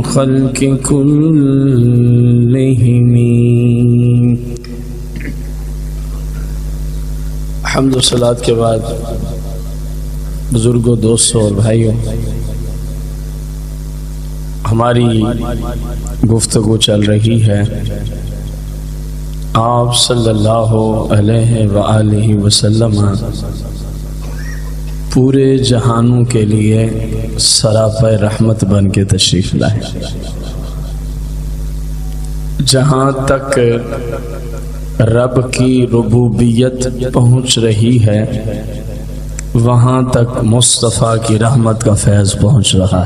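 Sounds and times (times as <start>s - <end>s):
steady low hum: 0.0s - 43.0s
person talking: 7.6s - 9.4s, 10.5s - 12.3s, 14.6s - 18.1s, 19.5s - 31.2s, 32.2s - 38.6s.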